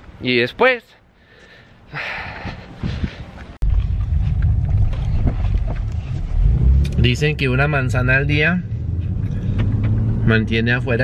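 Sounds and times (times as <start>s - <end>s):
car cabin rumble: 3.6s - 8.2s.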